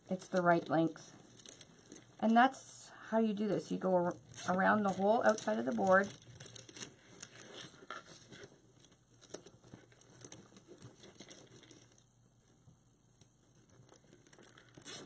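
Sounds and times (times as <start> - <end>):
plastic mesh rustling: 0.0 - 2.5, 4.1 - 12.1.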